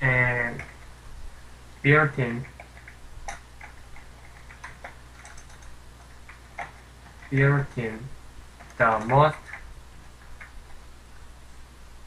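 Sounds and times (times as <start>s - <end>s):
computer keyboard typing: 0.4s - 0.9s, 2.2s - 7.9s, 8.6s - 10.8s.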